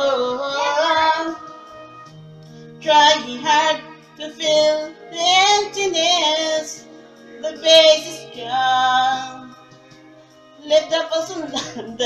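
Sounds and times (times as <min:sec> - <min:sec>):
woman singing into a microphone: 0:00.0 - 0:02.1, 0:02.8 - 0:06.8, 0:07.4 - 0:09.7, 0:10.6 - 0:12.0
slow backing track with keyboard: 0:00.0 - 0:12.0.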